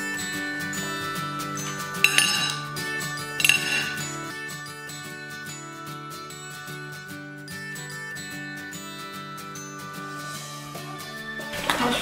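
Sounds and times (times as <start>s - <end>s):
background music: 0.0s - 12.0s
cutlery clinking on plate: 1.7s - 2.7s, 3.4s - 4.1s.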